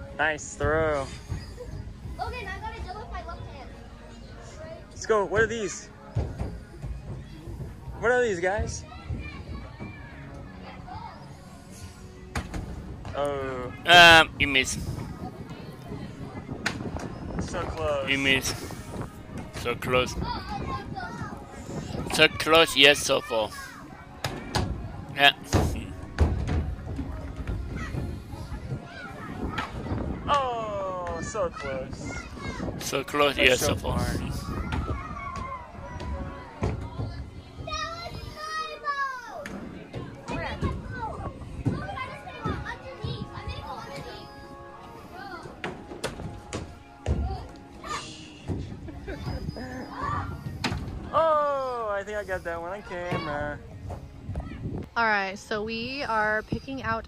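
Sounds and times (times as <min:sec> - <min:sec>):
children chattering: 0:01.0 - 0:12.3, 0:13.7 - 0:30.4, 0:31.2 - 0:55.2.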